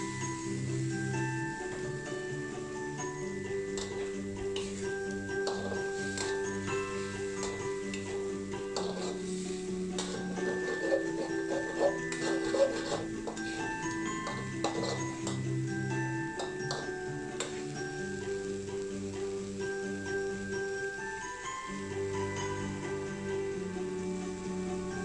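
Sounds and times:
background music with held notes: 0.0s - 25.0s
metal spatula clinking on wok: 3.7s - 4.2s, 5.4s - 6.4s, 8.7s - 9.2s, 10.0s - 15.4s, 16.3s - 17.6s.

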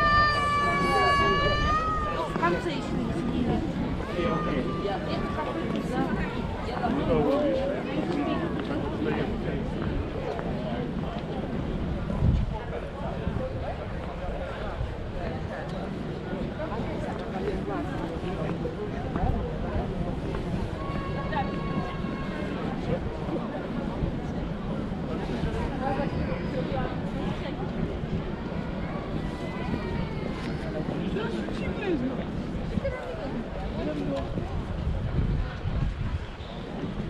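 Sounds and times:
passers-by talking: 0.0s - 37.0s.

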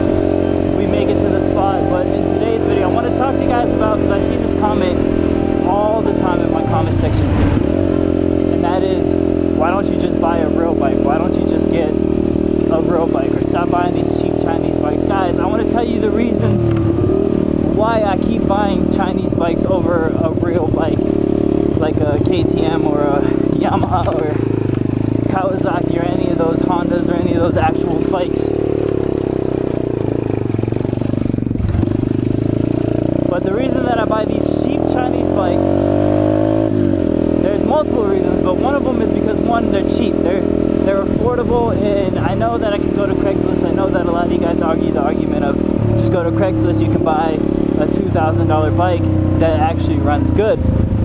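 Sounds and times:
dirt bike engine running: 0.0s - 51.0s.

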